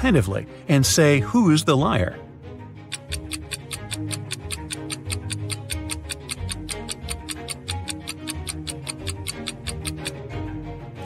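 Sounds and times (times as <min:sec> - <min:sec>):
background music with bass line: 0:02.1 - 0:11.0
countdown ticking: 0:02.9 - 0:10.2.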